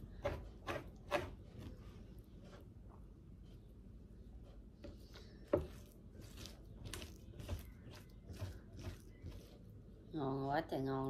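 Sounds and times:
spoon scraping fish flesh: 0:04.9 - 0:09.7.

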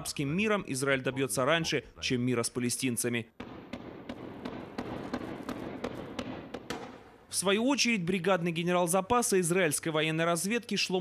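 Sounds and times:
launcher bangs and pops: 0:03.4 - 0:07.3.

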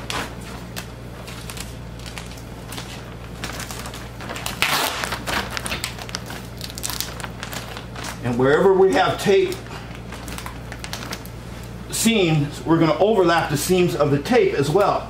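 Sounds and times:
plastic sheeting crinkling: 0:00.0 - 0:11.8.

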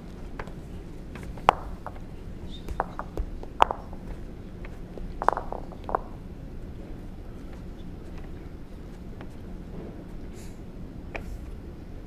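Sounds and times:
low hall hum: 0:00.0 - 0:12.0
sharp clicks and knocks: 0:02.7 - 0:06.2.

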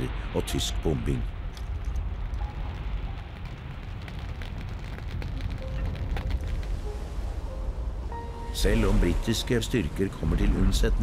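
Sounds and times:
steady low rumble: 0:00.0 - 0:11.0
faint scattered crackling: 0:01.4 - 0:08.3.

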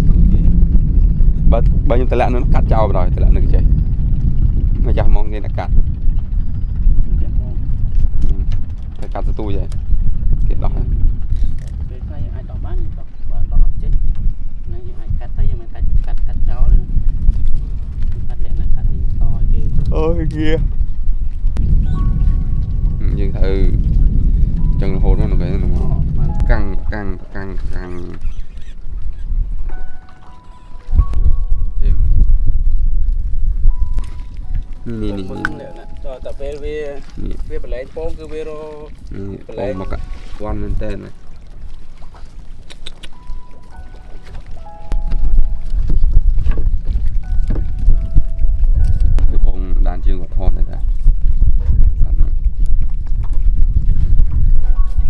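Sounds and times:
boat engine droning: 0:00.0 - 0:20.1, 0:20.7 - 0:51.6
wind buffeting microphone: 0:00.0 - 0:55.0
faint melody: 0:21.6 - 0:28.2, 0:29.6 - 0:37.2, 0:43.1 - 0:50.8, 0:54.6 - 0:55.0
faint steady tones: 0:29.7 - 0:38.5, 0:43.2 - 0:46.2.

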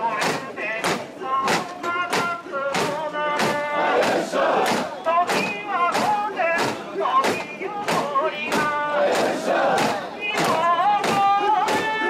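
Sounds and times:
crowd voices: 0:00.0 - 0:12.0
people shouting a rhythmic chant: 0:00.0 - 0:12.0.

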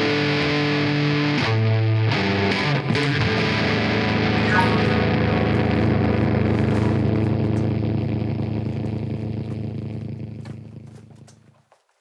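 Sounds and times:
distorted guitar and bass drone: 0:00.0 - 0:11.4.

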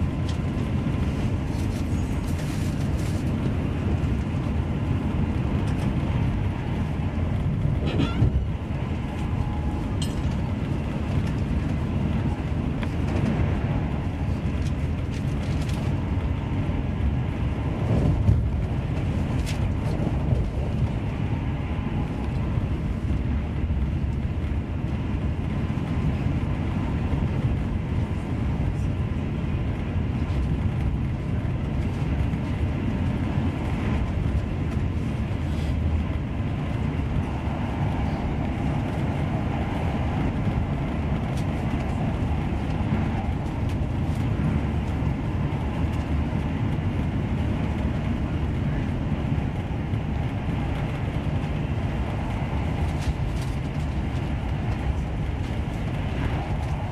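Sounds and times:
train coach running rumble: 0:00.0 - 0:56.9.

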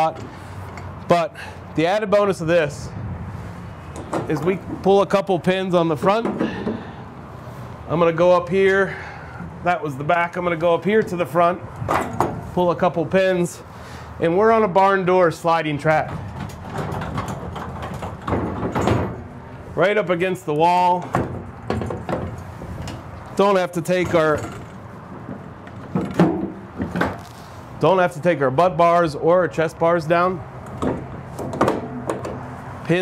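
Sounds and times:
metal pins clicking and knocking: 0:16.3 - 0:19.3.

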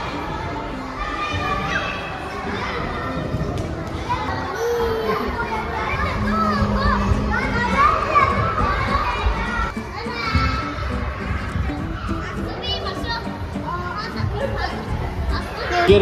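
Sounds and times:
children calling and squealing: 0:00.0 - 0:16.0.

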